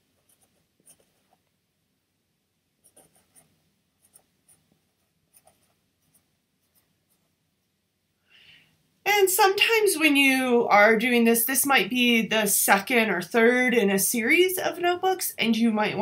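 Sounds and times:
marker pen scratching on book cover: 0.1s - 1.5s, 2.8s - 7.4s.

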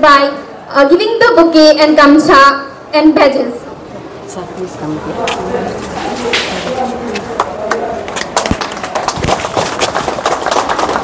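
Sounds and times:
people clapping: 5.3s - 11.0s.

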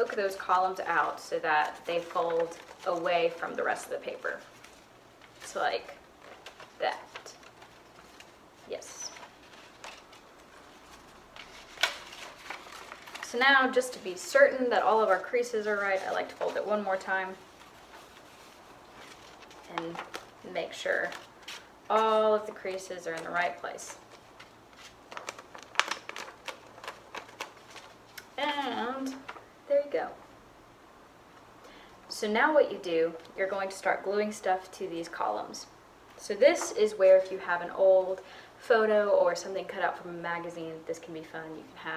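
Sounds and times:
sharp paper crackle: 0.0s - 29.4s
paper rustling and crinkling: 0.0s - 29.5s.

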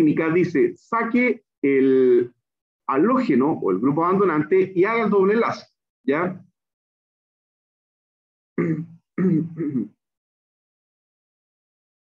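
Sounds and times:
man clearing throat: 8.6s - 10.0s.

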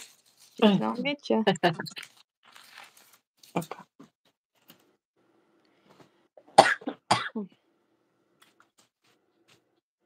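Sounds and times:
person coughing: 6.5s - 7.6s.

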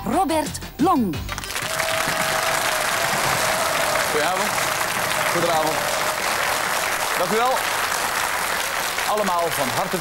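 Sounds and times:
audience applauding: 1.3s - 10.0s.

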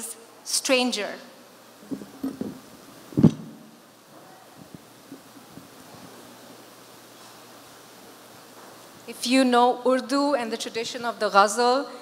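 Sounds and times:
microphone handling thump: 1.8s - 3.7s.

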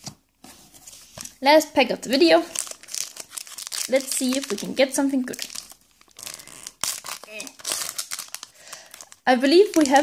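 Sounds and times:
foil wrapper crinkling and tearing: 2.5s - 10.0s.

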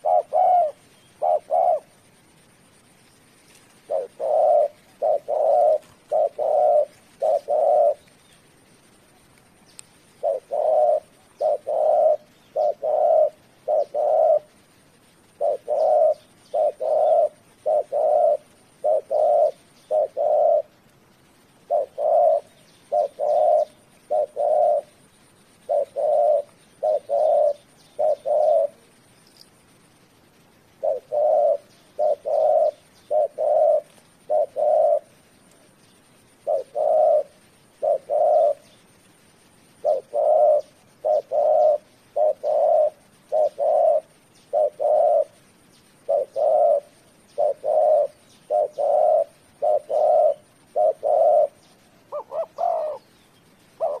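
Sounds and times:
dove cooing: 0.0s - 8.6s, 10.0s - 29.2s, 30.2s - 54.0s.

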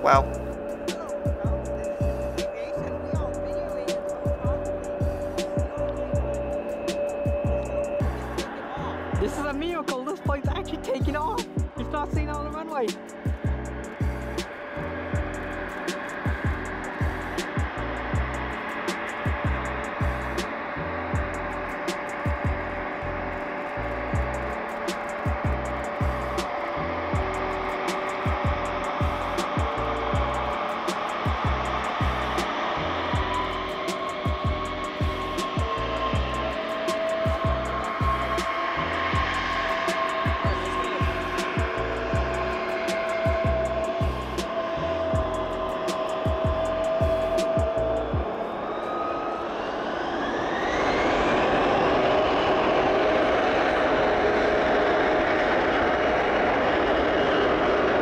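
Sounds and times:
background music with beat: 0.0s - 48.8s
jet engines spooling up: 0.0s - 58.0s.

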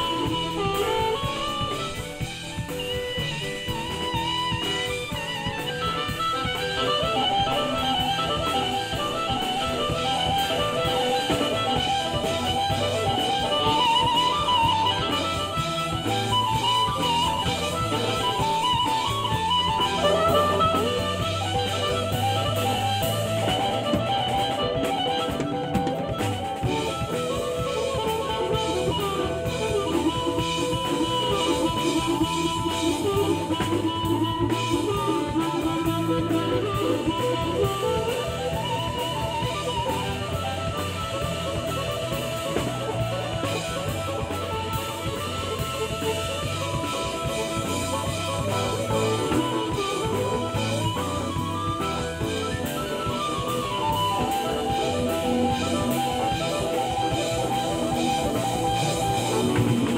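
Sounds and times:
drum kit: 0.0s - 59.9s
electric bass: 0.0s - 59.9s
electric guitar: 0.0s - 59.9s
harmonica: 0.0s - 59.9s.

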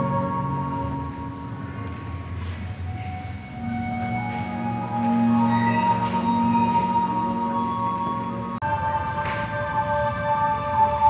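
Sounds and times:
slow traditional string and wind music: 0.0s - 11.0s.

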